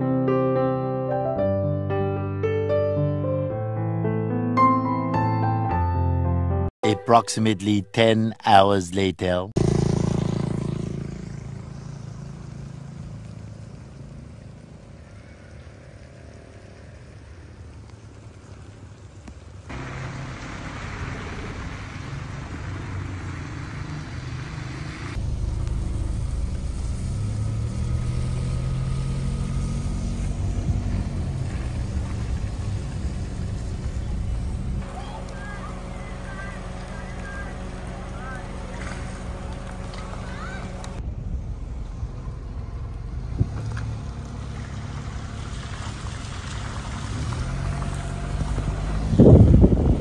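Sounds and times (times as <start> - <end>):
rain on wet street: 9.6 - 41.0, 42.8 - 50.0
deep rumble: 19.7 - 50.0.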